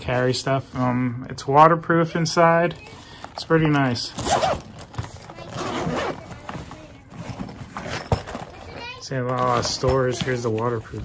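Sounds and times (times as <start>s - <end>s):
zipper being pulled: 4.2s - 6.4s, 7.1s - 8.4s.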